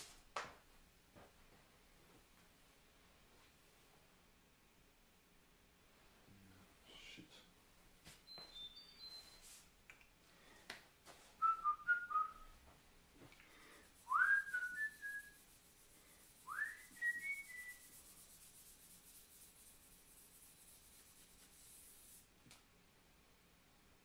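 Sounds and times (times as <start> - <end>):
person whistling a tune: 11.4 - 12.5, 14.1 - 15.4, 16.5 - 17.9
rosin scratching on bow hair: 13.7 - 22.3.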